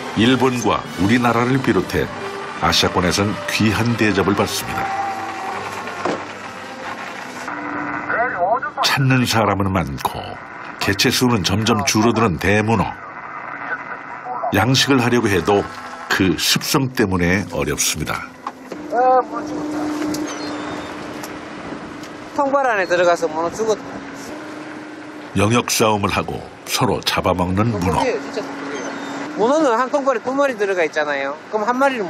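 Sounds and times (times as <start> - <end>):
low hum: 0.0 - 29.5
boat engine running: 0.0 - 32.0
wind and waves: 18.9 - 25.0
sea: 18.9 - 26.0.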